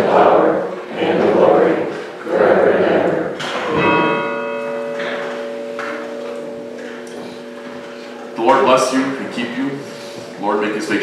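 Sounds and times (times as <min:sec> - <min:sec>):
bell ringing: 0:03.6 - 0:10.7.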